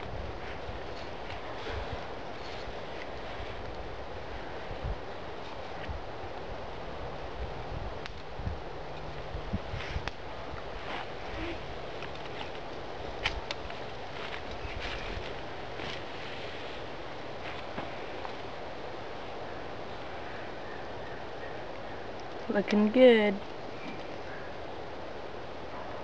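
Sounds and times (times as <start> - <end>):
outdoor background noise: 0.0 - 26.0.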